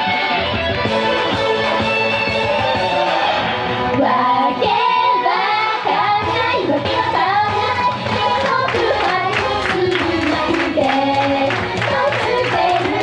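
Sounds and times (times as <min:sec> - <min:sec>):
female singers singing: 0:04.0 - 0:13.0.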